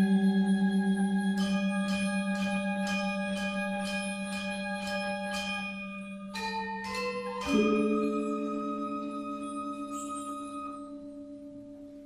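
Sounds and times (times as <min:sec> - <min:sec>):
gamelan metallophones and gongs: 0:00.0 - 0:12.0.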